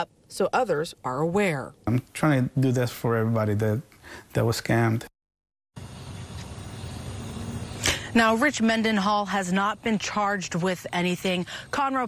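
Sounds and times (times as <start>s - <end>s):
low outdoor rumble: 5.8s - 12.0s
sharp intake of breath: 7.7s - 8.2s.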